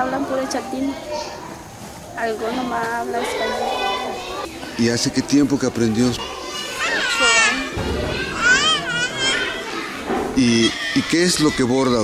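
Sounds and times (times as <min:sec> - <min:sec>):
child calling out: 0:06.3 - 0:09.9.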